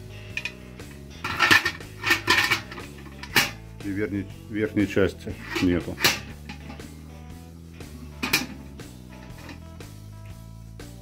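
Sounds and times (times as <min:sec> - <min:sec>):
metal parts clinking and rattling: 0:00.3 - 0:00.6, 0:01.2 - 0:03.6, 0:05.4 - 0:06.8, 0:08.2 - 0:09.7.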